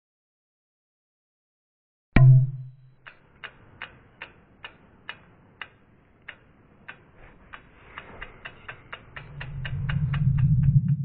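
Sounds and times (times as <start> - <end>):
sharp ticks: 3.0 - 11.0
low swell: 9.0 - 11.0.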